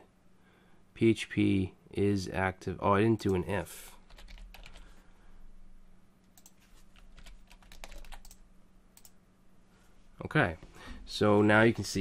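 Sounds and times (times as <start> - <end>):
low steady hum: 0.0 - 12.0
keyboard keystrokes: 6.4 - 8.4.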